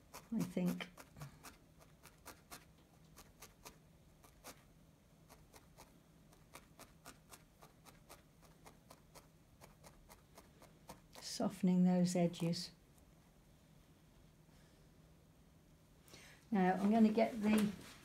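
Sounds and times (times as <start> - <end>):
faint low hum: 0.0 - 18.0.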